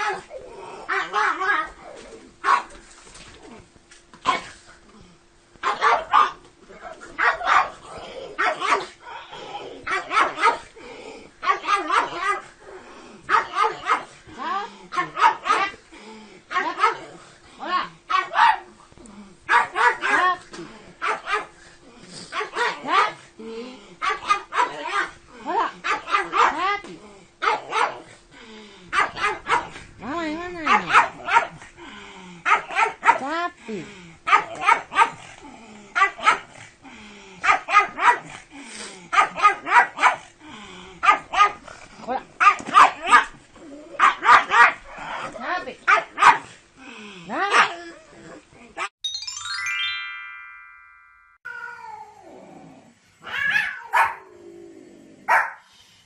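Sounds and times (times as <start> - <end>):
dog barking: 0.9 - 1.6, 2.4 - 2.7, 5.6 - 6.4, 7.2 - 7.8, 8.4 - 8.9, 9.9 - 10.6, 11.4 - 12.4, 13.3 - 14.1, 15.0 - 15.8, 16.5 - 17.0, 18.1 - 18.7, 19.5 - 20.2, 21.0 - 21.5, 22.4 - 23.2, 24.0 - 25.1, 25.8 - 26.6, 27.4 - 28.0, 29.0 - 29.8, 30.7 - 31.6, 32.5 - 33.3, 34.3 - 35.2, 36.0 - 36.5, 37.4 - 38.3, 39.1 - 40.2, 41.0 - 41.6, 42.4 - 43.3, 44.0 - 44.8, 45.9 - 46.5, 47.5 - 47.7, 53.3 - 54.3, 55.3 - 55.6.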